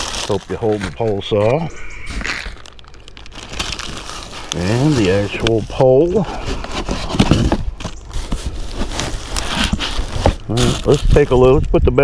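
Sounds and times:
cardboard rustling and scraping: 0.0 - 11.6
bubble wrap rustling: 0.0 - 11.7.

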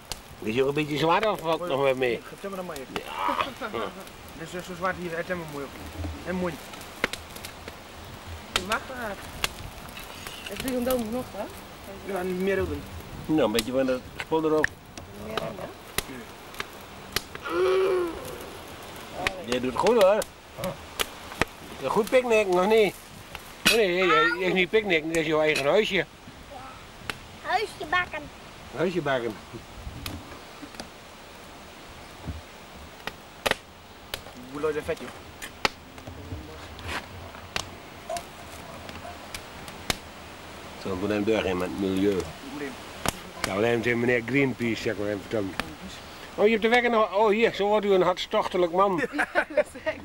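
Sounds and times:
steady background hiss: 0.0 - 50.0.

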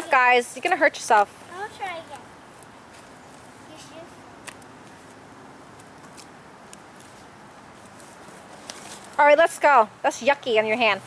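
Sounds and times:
outdoor background hiss: 0.0 - 11.0.

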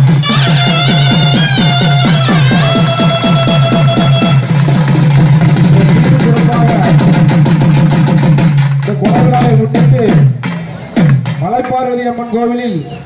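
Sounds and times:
reedy wind instrument note: 0.0 - 4.6
fast steady drumming: 0.0 - 12.1.

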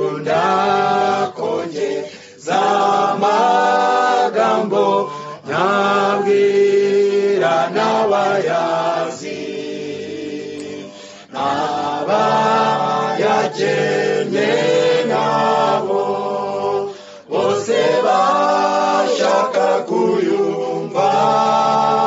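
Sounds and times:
choir singing a cappella: 0.0 - 22.0.

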